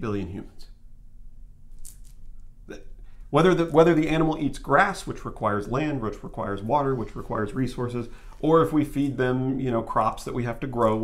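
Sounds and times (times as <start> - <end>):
person talking: 0.0 - 0.7, 2.7 - 11.0
low room hum: 0.0 - 11.0
person breathing: 8.1 - 8.4.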